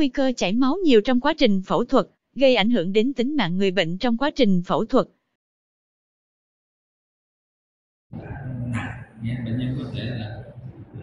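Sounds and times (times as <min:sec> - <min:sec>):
man speaking: 0:00.0 - 0:05.0, 0:08.2 - 0:11.0.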